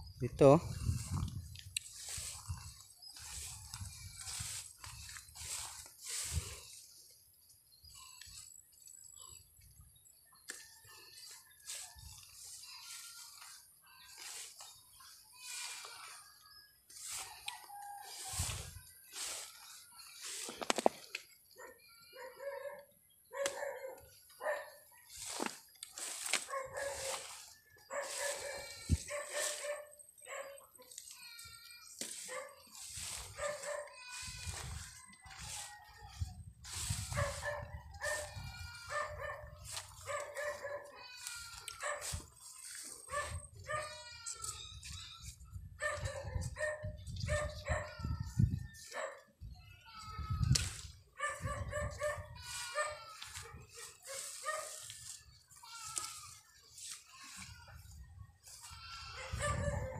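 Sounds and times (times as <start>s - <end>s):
dog barking and yipping: 21.6s - 24.8s, 26.4s - 30.9s, 32.2s - 34.1s, 37.1s - 41.0s, 41.8s - 42.2s, 43.0s - 44.0s, 45.8s - 48.1s, 48.9s - 49.2s, 51.2s - 54.8s, 59.2s - 59.9s.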